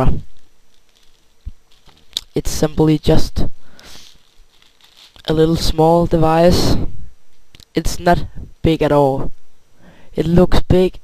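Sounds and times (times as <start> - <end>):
camcorder in plastic bag rustling: 0.0 - 3.0, 3.7 - 5.6.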